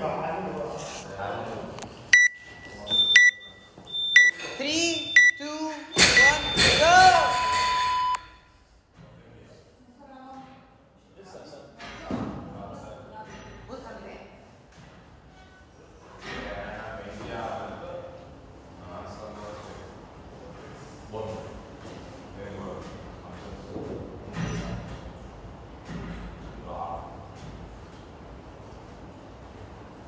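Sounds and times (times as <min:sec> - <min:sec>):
countdown timer beeping: 0:02.2 - 0:08.2.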